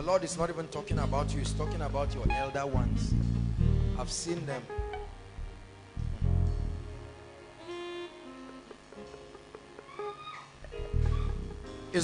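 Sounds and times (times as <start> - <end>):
low keyboard swell: 0.0 - 9.1
plucked guitar-like notes: 0.8 - 6.9, 10.6 - 12.0.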